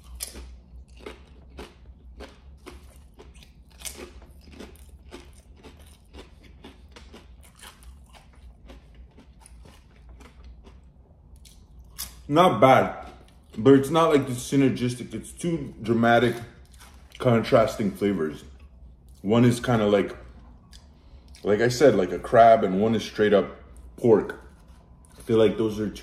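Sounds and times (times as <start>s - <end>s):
chewing crunchy chips: 0.0s - 26.0s.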